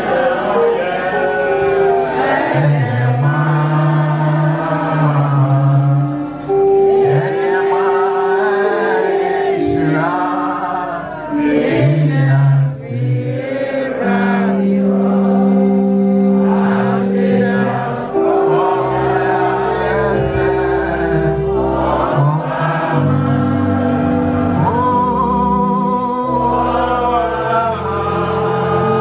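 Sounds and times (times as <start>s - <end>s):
electronic keyboard: 0.0s - 29.0s
voices singing a slow hymn: 0.0s - 29.0s.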